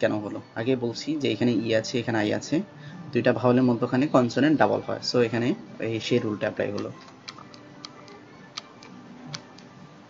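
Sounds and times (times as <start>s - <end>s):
man speaking: 0.0s - 7.0s
computer mouse clicking: 6.8s - 9.7s.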